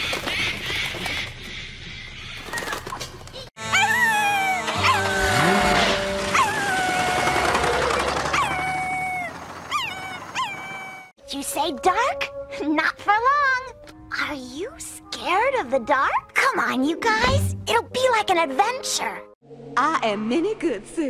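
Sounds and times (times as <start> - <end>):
background music: 3.6 - 8.2, 11.2 - 19.8
cartoon dog howling: 3.6 - 11.1.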